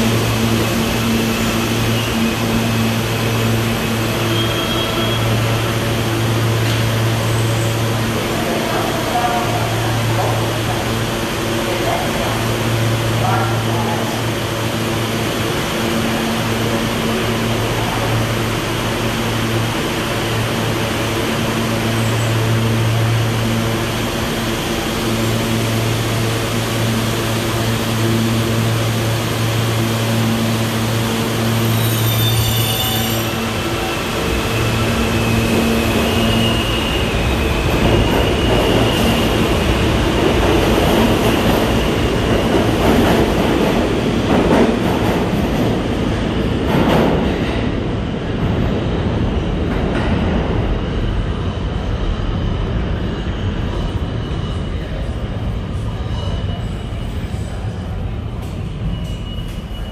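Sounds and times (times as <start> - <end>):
train rumbling along track: 0.0 - 59.9
wheel squeal: 31.5 - 33.4, 58.6 - 59.9.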